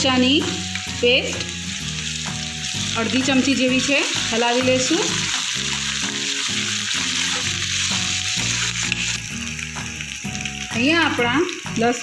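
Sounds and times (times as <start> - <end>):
food sizzling in hot oil: 0.0 - 12.0
soft instrumental music: 0.0 - 12.0
spoon stirring in a pan: 3.8 - 9.0.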